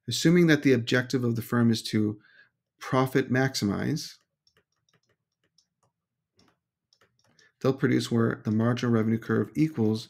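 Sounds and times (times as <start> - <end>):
stylus tapping on tablet: 4.2 - 7.5.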